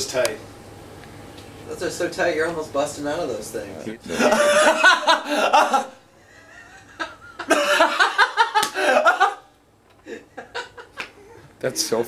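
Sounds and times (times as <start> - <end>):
laughter: 4.0 - 11.2.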